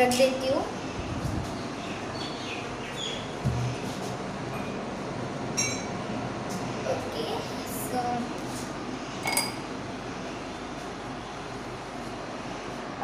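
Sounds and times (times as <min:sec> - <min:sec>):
steady background hum: 0:00.0 - 0:13.0
glass clinking: 0:05.6 - 0:06.0, 0:09.2 - 0:09.6.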